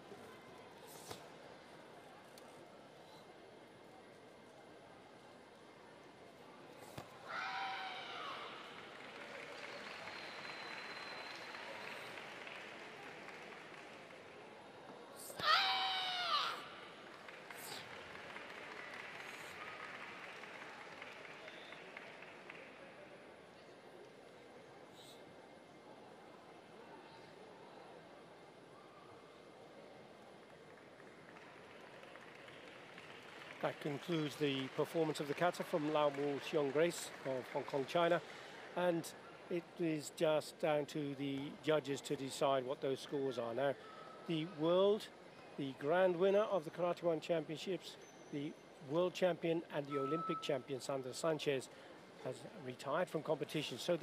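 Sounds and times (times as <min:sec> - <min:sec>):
faint hall murmur: 0:00.0 - 0:54.0.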